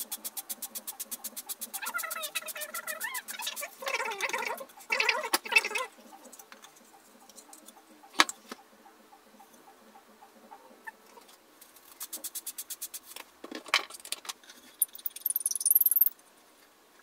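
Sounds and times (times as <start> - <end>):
sped-up clicks and knocks: 0.0 - 10.0.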